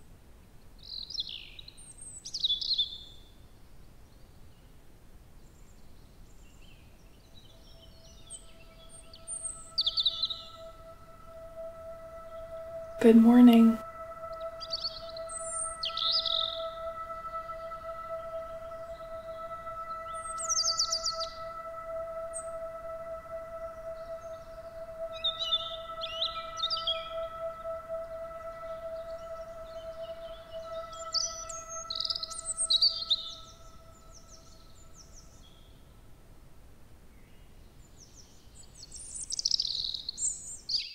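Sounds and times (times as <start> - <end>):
songbirds chirping and singing: 0.8 - 3.2, 5.6 - 35.9, 37.4 - 40.9
steady held tone: 7.9 - 35.3.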